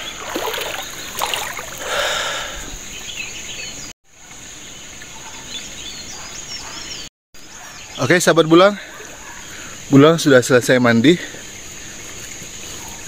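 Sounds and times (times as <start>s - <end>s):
river water rushing: 0.0s - 2.5s
small birds chirping: 0.0s - 3.9s, 4.5s - 10.1s.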